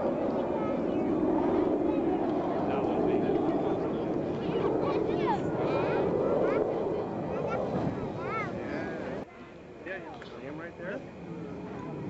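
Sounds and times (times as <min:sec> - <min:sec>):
faint voices: 0:00.0 - 0:12.0
jet aircraft flying overhead: 0:00.0 - 0:12.0.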